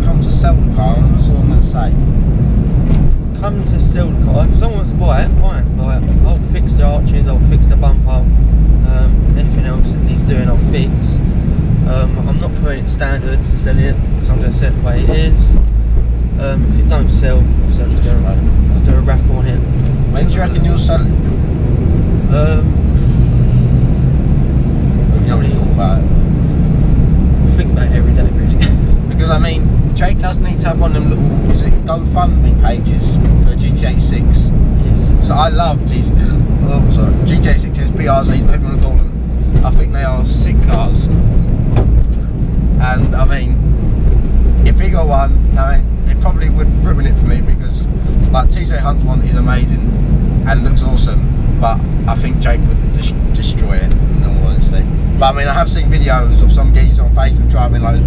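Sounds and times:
car engine and road noise: 0:00.0 - 0:58.0
people conversing: 0:00.0 - 0:58.0.

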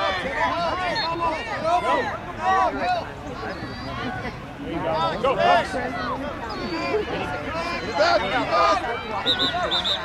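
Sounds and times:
voices calling and shouting: 0:00.0 - 0:10.0.

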